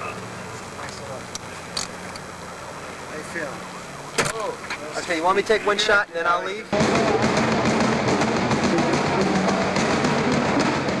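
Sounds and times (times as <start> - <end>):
band music with drum kit: 6.7 - 11.0.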